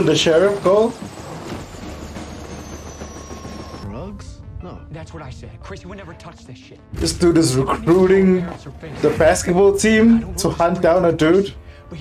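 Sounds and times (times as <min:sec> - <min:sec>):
thin high falling tone: 0:00.0 - 0:04.4
train rumbling on rails: 0:00.5 - 0:03.9.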